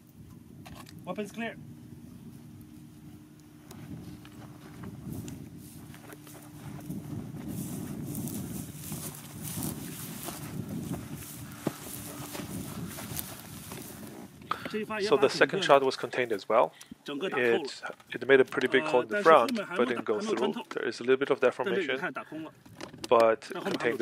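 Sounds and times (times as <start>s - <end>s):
footsteps on dry grass: 2.2s - 16.5s
brush rustling: 2.3s - 16.5s.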